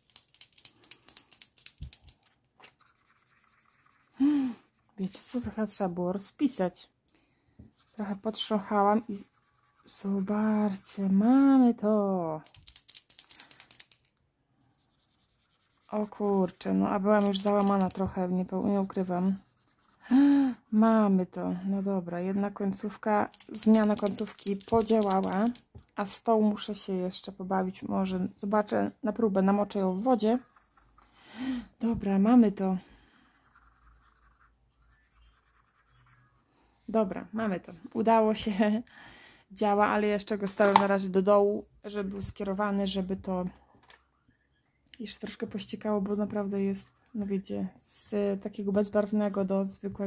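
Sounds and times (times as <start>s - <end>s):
marker scratching on paper: 2.7s - 5.5s, 7.7s - 11.6s, 14.7s - 20.0s, 21.8s - 25.6s, 30.0s - 31.1s, 33.0s - 36.4s.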